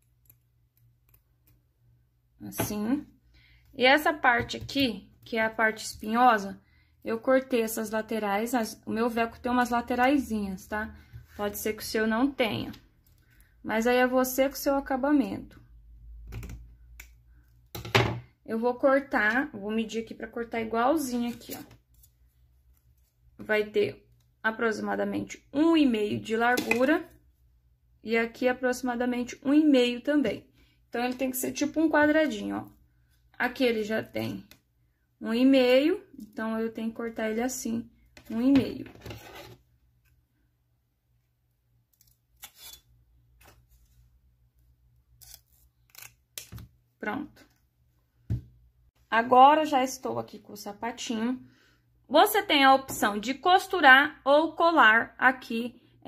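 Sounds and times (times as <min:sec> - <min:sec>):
scissors cutting velcro: 0:41.9 - 0:42.9, 0:45.2 - 0:46.6.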